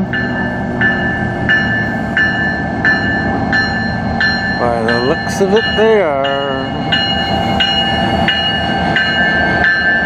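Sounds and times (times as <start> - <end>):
diesel locomotives rumbling: 0.0 - 10.0
warning bell ringing: 0.0 - 10.0.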